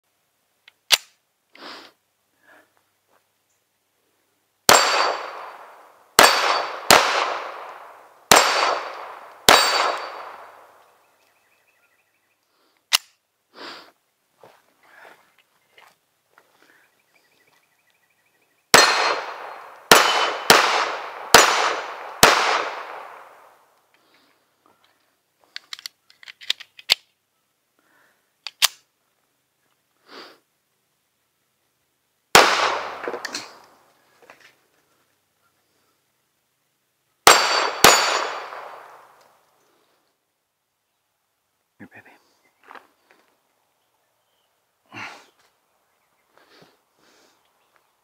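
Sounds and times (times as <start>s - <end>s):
pistol shots with echo: 4.7s - 10.8s, 18.7s - 23.6s, 32.3s - 33.6s, 37.2s - 39.2s
small metal clicks of pistol: 12.8s - 13.2s, 25.5s - 27.2s, 28.4s - 28.9s.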